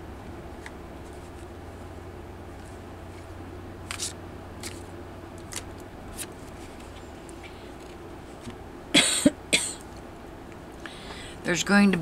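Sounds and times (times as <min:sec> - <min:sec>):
steady low hum: 0:00.0 - 0:12.0
cards sliding swish: 0:03.9 - 0:04.9.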